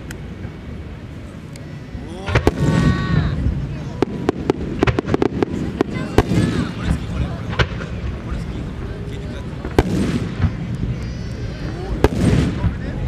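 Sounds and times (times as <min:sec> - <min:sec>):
spectators' voices: 0:00.0 - 0:13.0
firework bangs: 0:02.0 - 0:13.0
low rumble of booms: 0:02.2 - 0:13.0.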